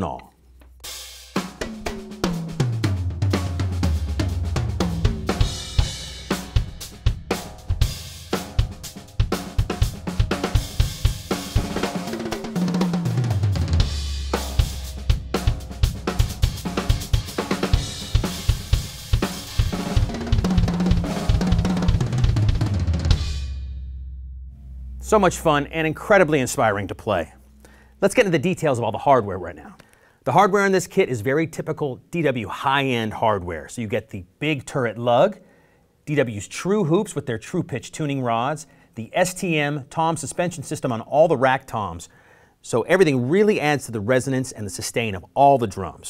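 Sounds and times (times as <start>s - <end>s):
drum kit groove: 0.0s - 23.8s, 24.5s - 29.1s
tom fills: 0.0s - 30.3s.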